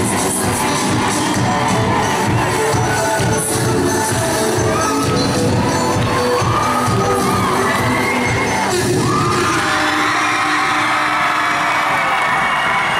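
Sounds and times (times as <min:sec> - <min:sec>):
children cheering and shouting: 0:00.0 - 0:12.9
pop dance music: 0:00.0 - 0:12.9.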